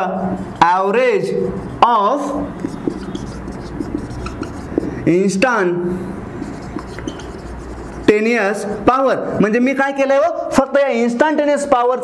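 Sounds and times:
marker scratching on whiteboard: 0:01.2 - 0:05.4, 0:06.2 - 0:08.8.

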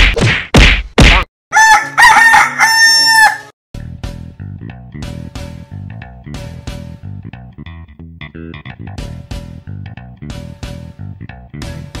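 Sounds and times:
loud rhythmic thuds: 0:00.0 - 0:01.3
rooster crowing: 0:01.5 - 0:03.5.

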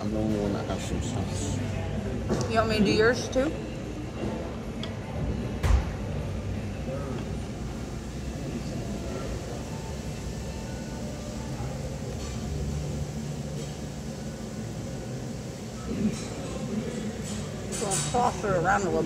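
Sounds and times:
faint indistinct voices: 0:00.0 - 0:19.0
low room rumble: 0:00.0 - 0:19.0.

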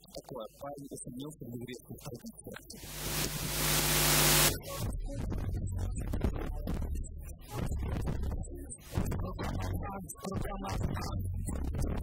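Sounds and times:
steady low hum: 0:02.8 - 0:04.6
loud static hiss: 0:02.8 - 0:04.7.

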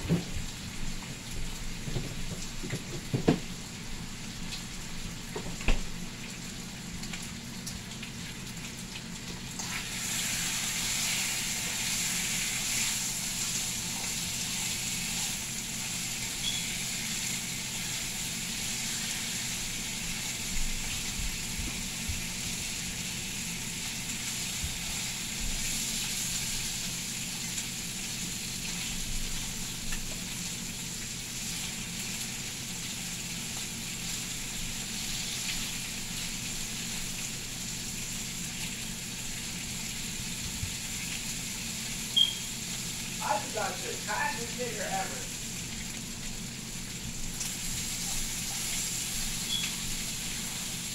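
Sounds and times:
bacon sizzling in a frying pan: 0:00.0 - 0:50.9.

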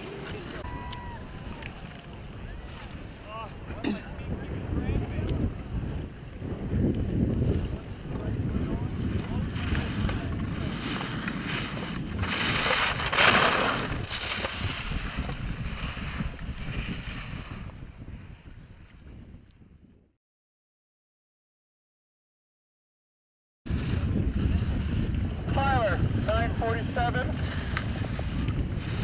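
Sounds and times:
skis running over snow: 0:00.0 - 0:03.8, 0:05.0 - 0:19.4, 0:23.7 - 0:29.0
wind rushing across microphone: 0:00.0 - 0:20.2, 0:23.7 - 0:29.0.

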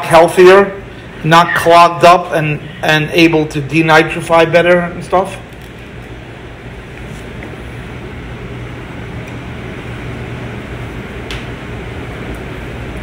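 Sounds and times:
low mechanical hum: 0:00.0 - 0:13.0.

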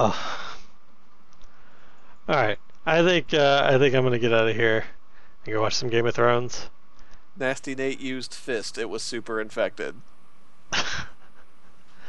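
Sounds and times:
person laughing: 0:10.7 - 0:12.0.

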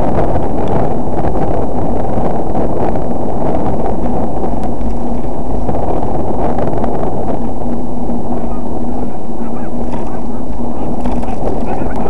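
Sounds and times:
faint steady hum: 0:00.0 - 0:12.0
wind buffeting microphone: 0:00.0 - 0:12.0.

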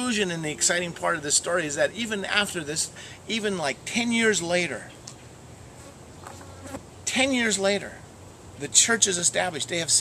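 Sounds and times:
insect buzzing: 0:05.7 - 0:06.8.

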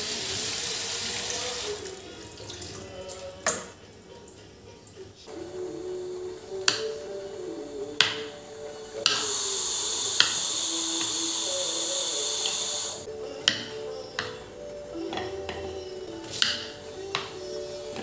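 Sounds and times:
loud steady hiss: 0:00.0 - 0:02.0, 0:05.2 - 0:18.0
soft background music: 0:00.0 - 0:18.0.

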